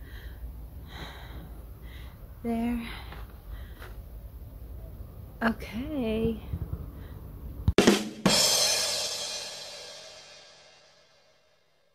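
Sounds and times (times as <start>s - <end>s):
quick drum hits: 7.8s - 10.2s
cymbal crash ringing: 8.1s - 11.4s.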